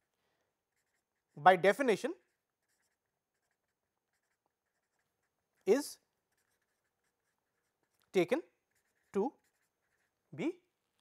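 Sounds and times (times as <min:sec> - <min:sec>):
marker scratching on paper: 0:00.0 - 0:10.6.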